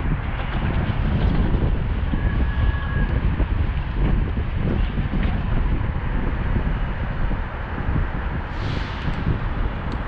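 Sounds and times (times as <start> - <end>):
city traffic: 0.0 - 10.0
wind rushing over microphone: 0.0 - 10.0.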